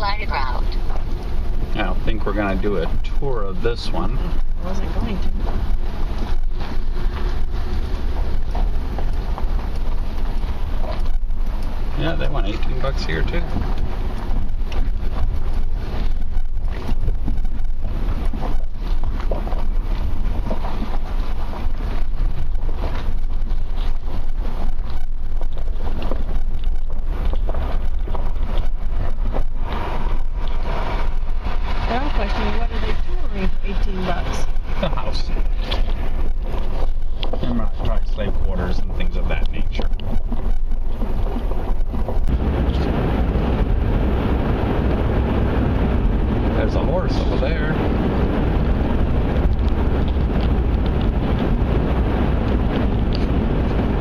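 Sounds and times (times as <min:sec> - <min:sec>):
car engine and road rumble: 0:00.0 - 0:54.0
wind buffeting microphone: 0:00.0 - 0:54.0.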